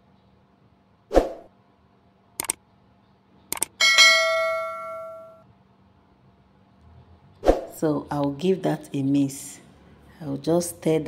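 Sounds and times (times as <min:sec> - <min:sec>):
clicks: 0:02.4 - 0:02.6, 0:03.5 - 0:03.8
bright bell ding: 0:03.8 - 0:05.4.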